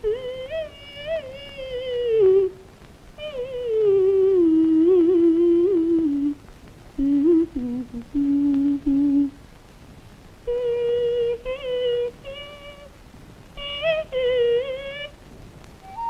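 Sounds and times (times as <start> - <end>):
woman humming: 0.0 - 2.6, 3.2 - 6.4, 7.0 - 9.4, 10.5 - 12.9, 13.6 - 15.1.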